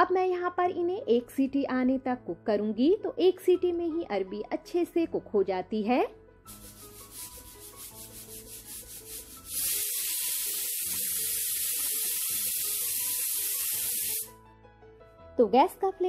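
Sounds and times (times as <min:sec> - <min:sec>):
pressure cooker pulsing hiss: 0:08.7 - 0:14.3
pressure cooker whistle: 0:09.5 - 0:14.3.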